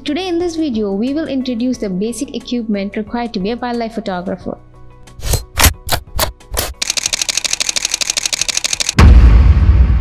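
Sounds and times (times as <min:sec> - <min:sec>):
rapid ticking roll: 0:06.8 - 0:09.0.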